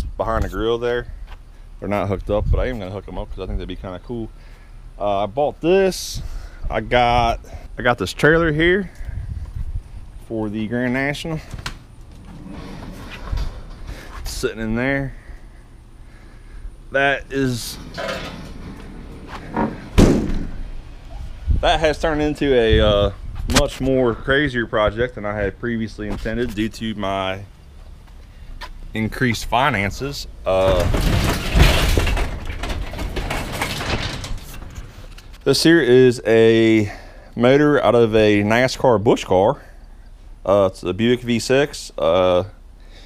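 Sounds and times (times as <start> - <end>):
garage door rolling open: 11.4 - 15.4, 17.0 - 21.4, 29.8 - 35.4
heavy low thump: 17.6 - 24.2
metal clicks and rattles: 30.6 - 35.4.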